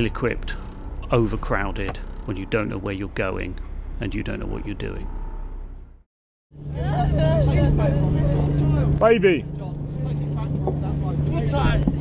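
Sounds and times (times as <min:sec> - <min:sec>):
voices calling out: 0:00.0 - 0:05.3
boat engine humming: 0:00.0 - 0:06.0, 0:06.6 - 0:12.0.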